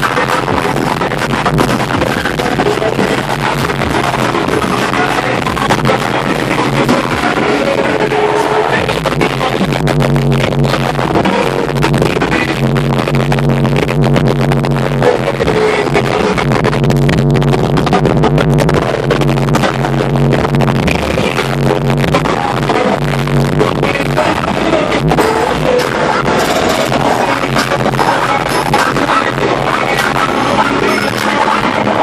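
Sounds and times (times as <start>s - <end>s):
loud music with bass line: 0.0s - 32.0s.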